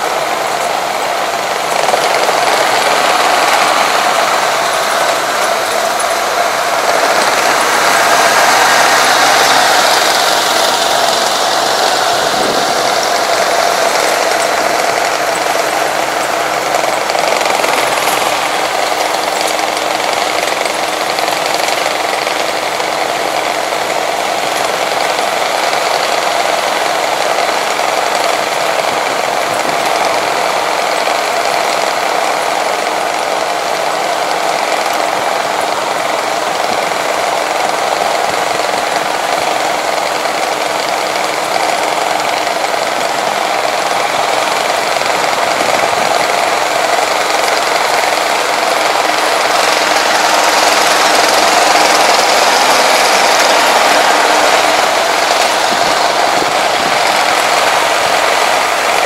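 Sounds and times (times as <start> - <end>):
vehicle engines on a road: 0.0 - 59.0.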